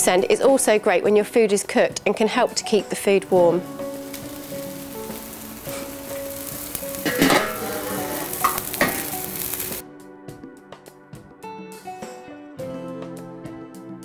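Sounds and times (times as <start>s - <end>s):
soft guitar music: 1.8s - 14.0s
meat sizzling on a grill: 3.6s - 9.8s.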